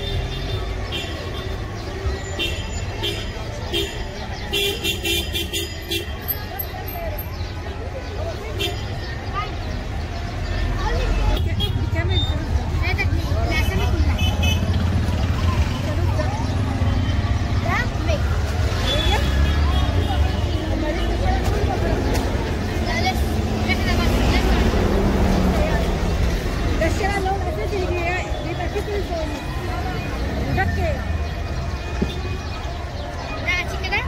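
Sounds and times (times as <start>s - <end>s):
crowd voices talking: 0.0s - 34.0s.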